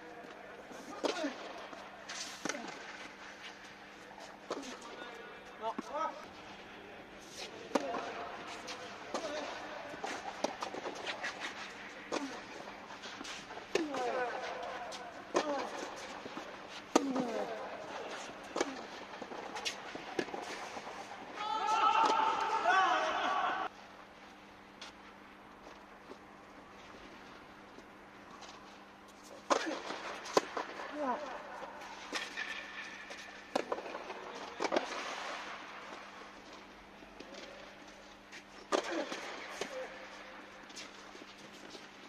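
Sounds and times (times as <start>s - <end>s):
racket hitting tennis ball: 7.3s - 21.4s, 29.4s - 35.5s
ringing echo in a hall: 20.7s - 23.8s.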